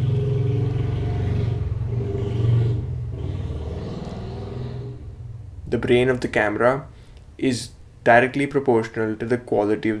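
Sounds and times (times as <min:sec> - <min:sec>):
passing vehicle engine rumble: 0:00.0 - 0:06.4.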